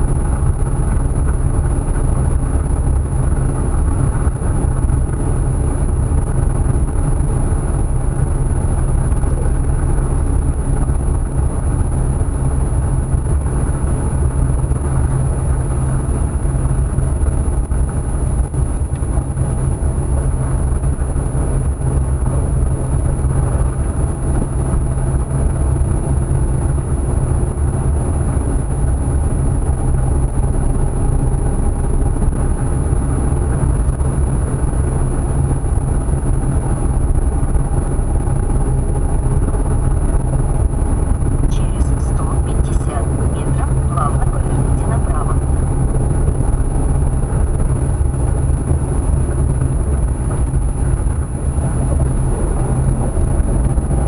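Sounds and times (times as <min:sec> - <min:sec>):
car engine and road noise: 0:00.0 - 0:54.0
high-pitched whine: 0:41.4 - 0:47.0.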